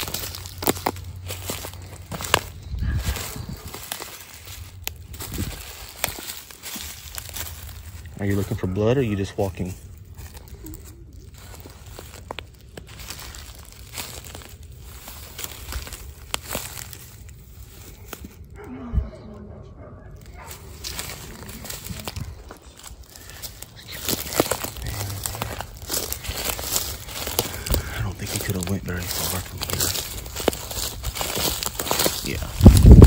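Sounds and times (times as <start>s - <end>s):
footsteps crunching through dry leaves: 0.0s - 18.6s, 20.2s - 33.0s.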